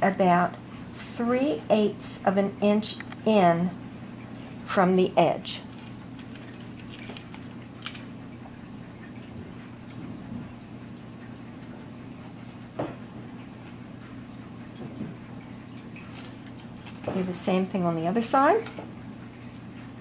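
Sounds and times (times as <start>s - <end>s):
steady low hum: 0.0s - 20.0s
fabric and ribbon handling: 5.7s - 8.0s
small clicks: 5.7s - 8.1s.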